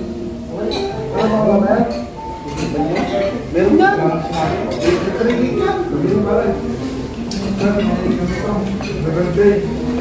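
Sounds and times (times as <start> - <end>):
people chattering: 0.0 - 10.0
cutlery clinking on plates: 0.6 - 3.4, 4.2 - 6.2, 7.3 - 9.3.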